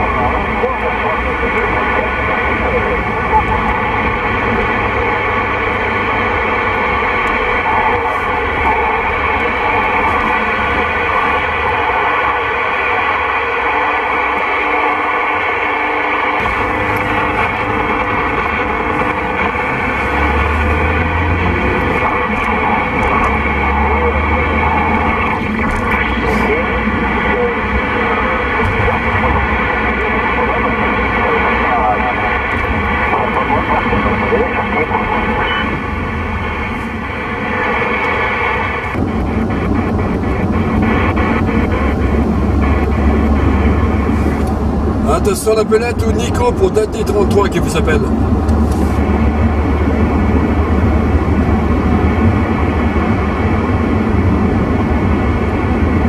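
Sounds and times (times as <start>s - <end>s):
radio whistling tones: 0.0s - 49.1s
indistinct radio voices: 0.0s - 49.2s
crackly radio audio: 0.0s - 56.0s
low car rumble: 0.0s - 56.0s.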